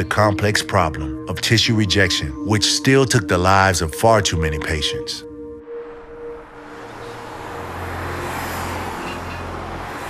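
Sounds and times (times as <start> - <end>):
car passing: 5.3 - 10.0.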